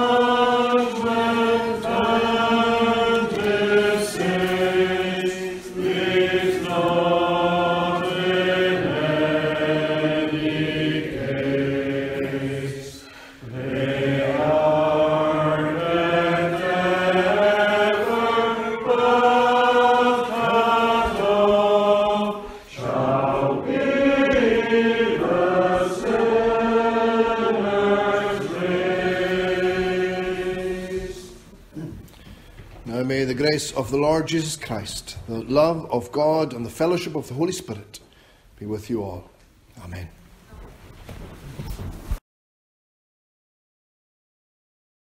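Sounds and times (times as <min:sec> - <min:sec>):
congregation singing unaccompanied: 0:00.0 - 0:31.9.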